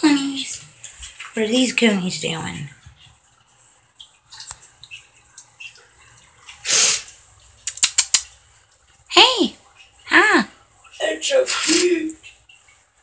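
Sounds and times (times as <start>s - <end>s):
small water drips: 0.0s - 13.0s
short loud hissing burst: 6.6s - 7.2s
sharp clicks: 7.6s - 8.3s.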